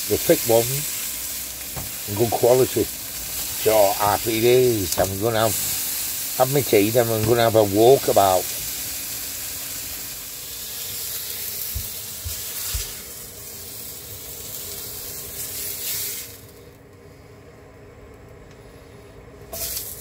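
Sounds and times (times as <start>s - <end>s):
meat sizzling in a frying pan: 0.0s - 16.6s, 19.5s - 20.0s.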